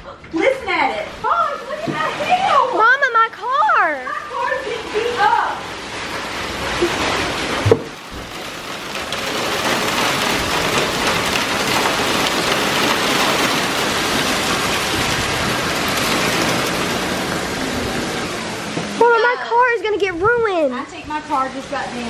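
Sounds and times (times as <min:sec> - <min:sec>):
heavy rain and hail pelting: 0:00.4 - 0:22.0.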